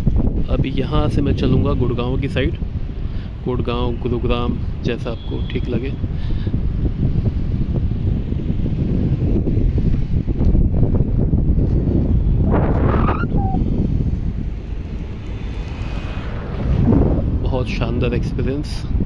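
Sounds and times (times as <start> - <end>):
wind buffeting microphone: 0.0 - 19.0
brief higher sound: 13.0 - 13.6.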